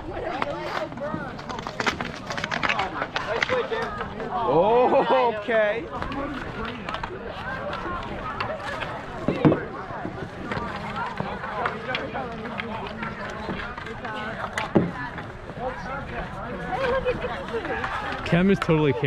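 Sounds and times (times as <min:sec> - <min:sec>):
hockey sticks clacking: 0:00.0 - 0:19.0
people shouting and talking: 0:00.0 - 0:19.0.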